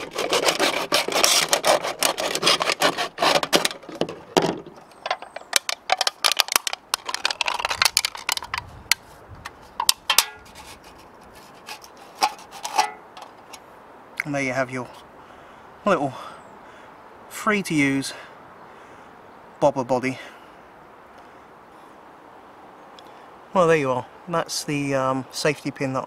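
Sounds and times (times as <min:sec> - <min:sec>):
knife sawing through can: 0:00.0 - 0:03.8
can clicks and crinkles: 0:00.0 - 0:13.6.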